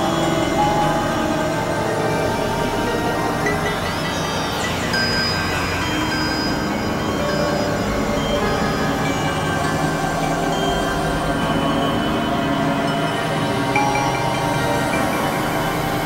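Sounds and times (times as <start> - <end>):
synthesizer drone music: 0.0 - 16.0.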